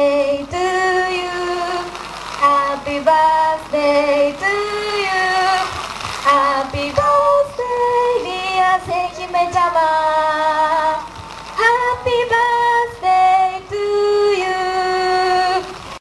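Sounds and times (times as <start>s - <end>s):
high voice singing: 0.0s - 16.0s.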